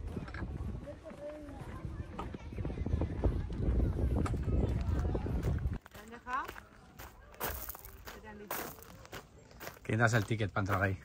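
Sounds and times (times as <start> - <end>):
wind buffeting microphone: 0.0 - 5.9
faint voices: 0.0 - 11.0
footsteps: 0.0 - 11.0.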